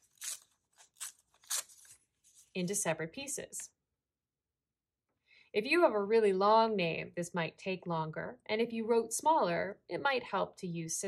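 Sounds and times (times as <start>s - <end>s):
paper tearing: 0.0s - 2.5s.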